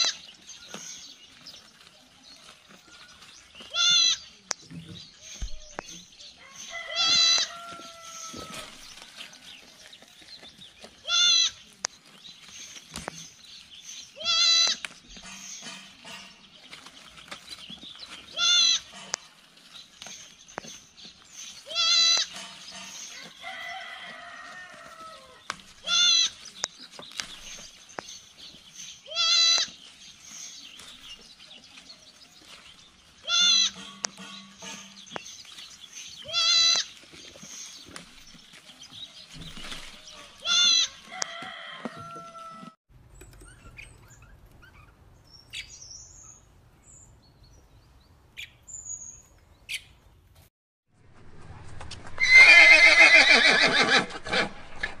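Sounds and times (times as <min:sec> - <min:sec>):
young sheep or goats bleating: 0:00.0 - 0:00.3, 0:03.6 - 0:04.3, 0:06.7 - 0:09.0, 0:11.0 - 0:11.6, 0:14.2 - 0:14.9, 0:18.3 - 0:19.2, 0:21.6 - 0:22.6, 0:23.2 - 0:26.5, 0:29.0 - 0:29.8, 0:33.2 - 0:35.0, 0:36.2 - 0:37.0, 0:39.8 - 0:41.2.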